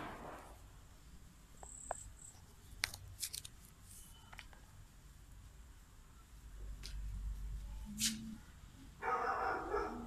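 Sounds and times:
fireworks crackling and popping: 0:00.0 - 0:00.9.

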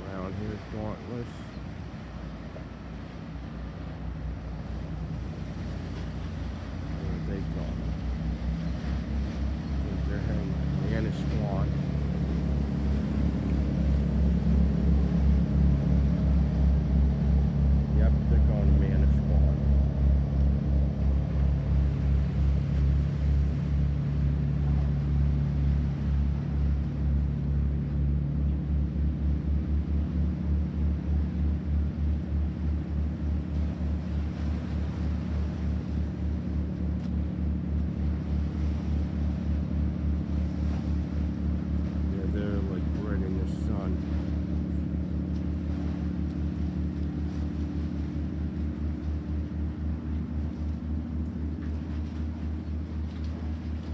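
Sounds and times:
boat diesel engine throbbing: 0:00.0 - 0:53.9.

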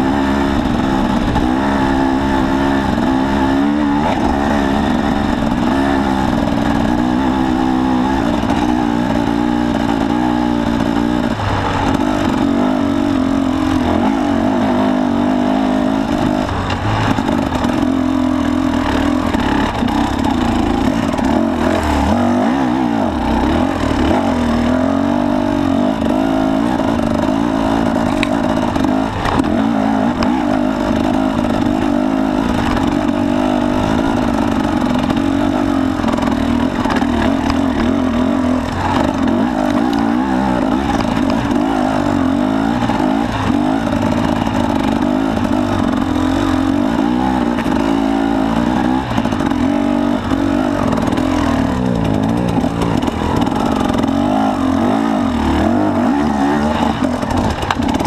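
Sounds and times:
motorcycle engine revving: 0:00.0 - 0:58.0
knocks and clatter from bike: 0:00.3 - 0:14.6, 0:15.4 - 0:22.3, 0:25.9 - 0:58.0.

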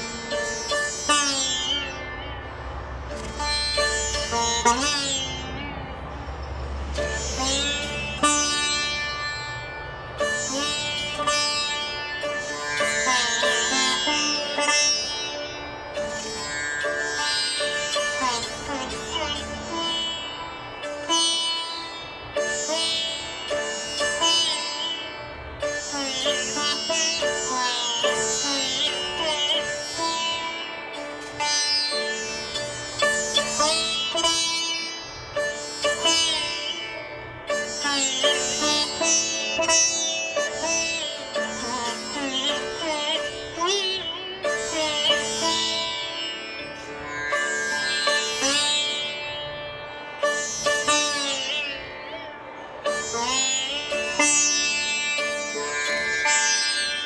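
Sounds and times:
sitar drone strings ringing: 0:00.0 - 0:57.0
sitar plucked notes: 0:00.0 - 0:57.0.

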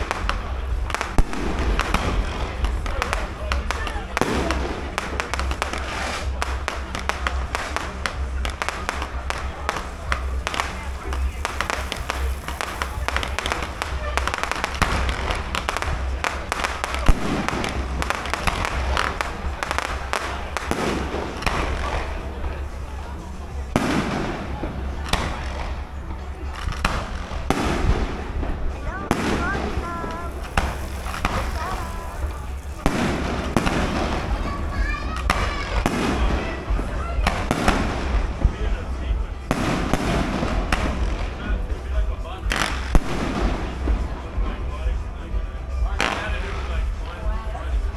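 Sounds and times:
fireworks bursting and crackling: 0:00.0 - 0:47.9.

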